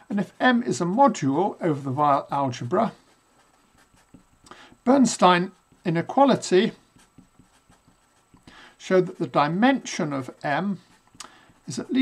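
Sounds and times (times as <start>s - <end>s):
person speaking: 0.0s - 12.0s
marker pen writing on paper: 2.6s - 9.4s, 10.7s - 12.0s.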